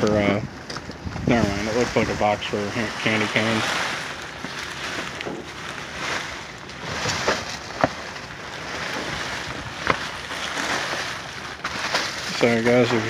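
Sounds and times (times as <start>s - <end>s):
plastic bags rustling and crinkling: 0.0s - 13.0s.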